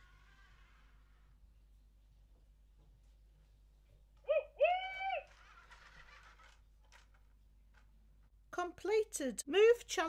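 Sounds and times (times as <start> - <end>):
hoot-like electronic tones: 4.3 - 5.3.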